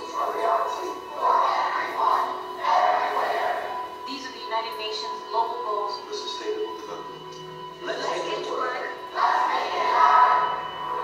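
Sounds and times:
background music over speakers: 0.0s - 11.0s.

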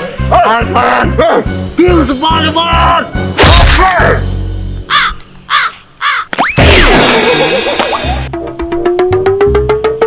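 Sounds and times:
harsh bird caws: 4.8s - 6.4s.

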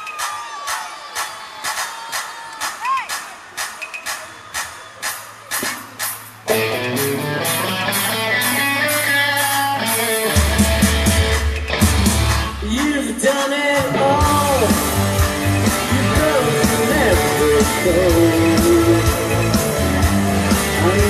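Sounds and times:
drum beat: 0.0s - 6.7s, 10.3s - 21.0s
guitars and keys: 6.5s - 21.0s
heavy bass line: 13.8s - 21.0s.

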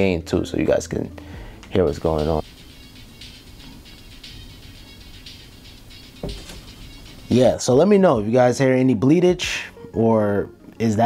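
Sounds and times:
faint music leaking from earbuds: 0.4s - 8.6s.

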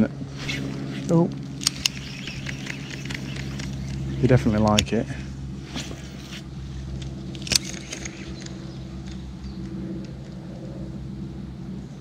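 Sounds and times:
steady low hum: 0.0s - 12.0s
sharp clicks: 1.6s - 4.1s, 7.0s - 10.4s.

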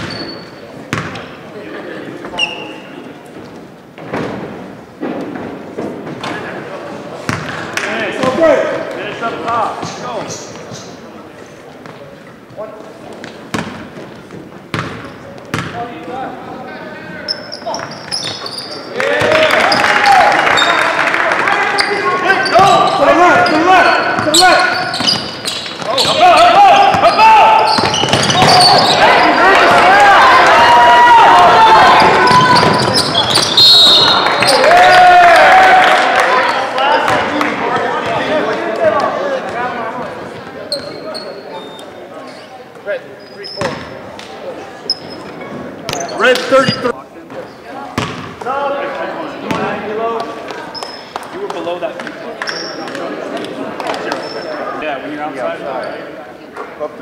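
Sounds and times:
basketball bouncing on wooden floor: 0.9s - 1.2s, 48.0s - 48.3s
crowd shouting: 25.9s - 39.4s.

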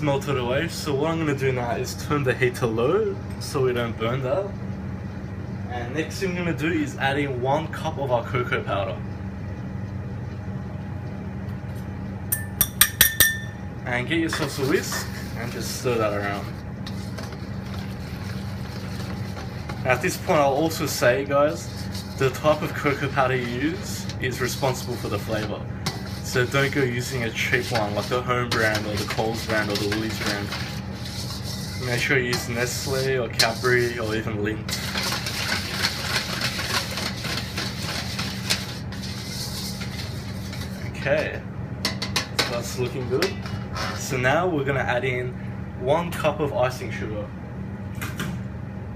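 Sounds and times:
steady low hum: 0.0s - 48.9s
metal utensil clinking on bowl: 12.3s - 13.6s
whisk scraping a steel bowl: 14.3s - 44.2s.

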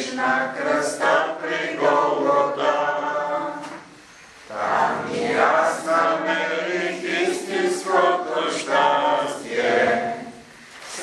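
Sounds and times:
voices singing a chant: 0.0s - 11.0s.

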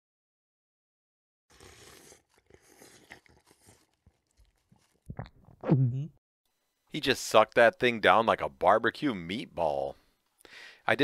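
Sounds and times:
faint crunching chewing sound: 1.5s - 5.4s
small crackles: 1.6s - 5.4s.

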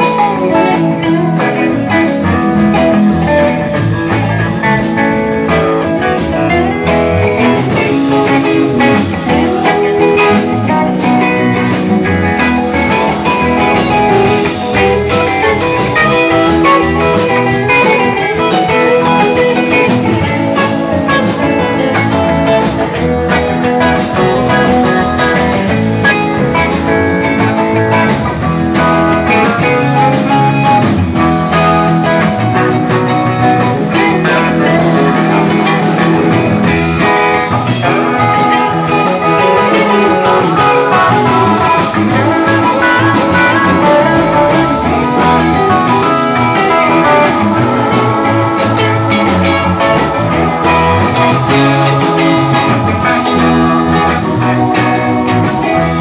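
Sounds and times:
electric guitars: 0.0s - 56.0s
rock band playing live: 0.0s - 56.0s.

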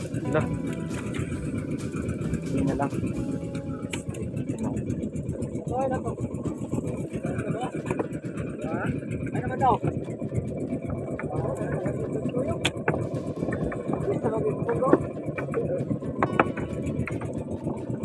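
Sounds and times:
people talking: 0.0s - 10.2s, 10.8s - 17.2s
low motor rumble: 0.0s - 18.0s.

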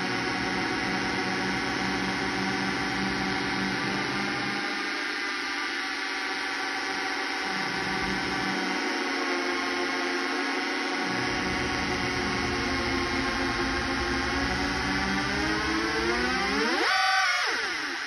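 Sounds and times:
buzzing drone synth chord: 0.0s - 18.0s.

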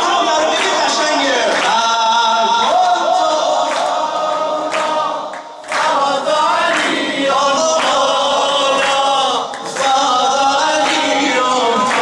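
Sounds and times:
unaccompanied devotional singing: 0.0s - 12.0s.

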